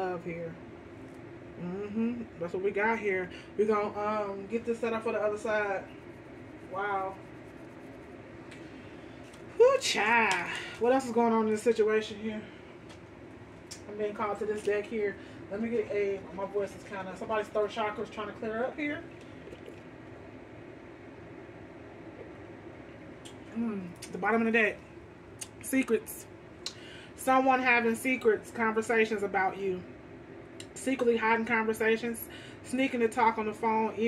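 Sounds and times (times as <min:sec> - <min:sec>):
room tone hiss and hum: 0:00.0 - 0:34.0
person speaking: 0:03.6 - 0:08.0.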